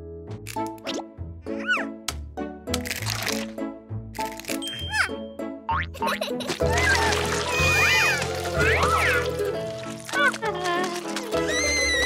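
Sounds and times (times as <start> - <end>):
background music: 0.0 - 12.0
cartoon character squealing: 6.7 - 9.3, 11.4 - 12.0.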